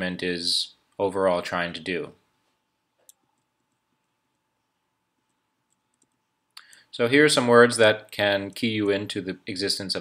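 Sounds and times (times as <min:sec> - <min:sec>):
person speaking: 0:00.0 - 0:02.4, 0:05.2 - 0:10.0
breath: 0:06.6 - 0:06.9.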